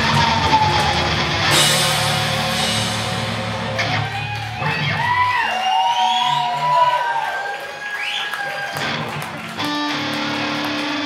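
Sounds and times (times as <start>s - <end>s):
rock band final hit: 0.0s - 5.1s
audience cheering and whooping: 0.0s - 11.0s.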